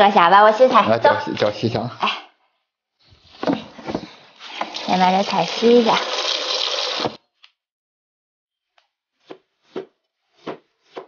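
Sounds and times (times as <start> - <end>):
tap water pouring into basin: 4.4 - 7.2.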